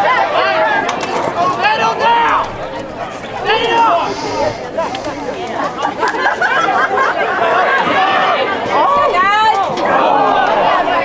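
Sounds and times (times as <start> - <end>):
babble of people talking: 0.0 - 11.0.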